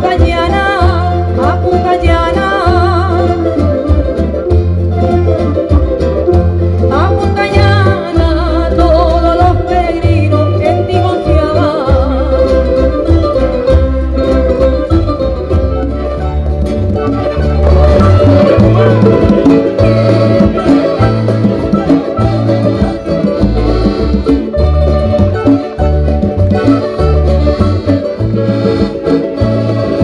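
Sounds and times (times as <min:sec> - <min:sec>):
plucked string instruments: 0:00.0 - 0:30.0
pulsing bass beat: 0:12.0 - 0:30.0.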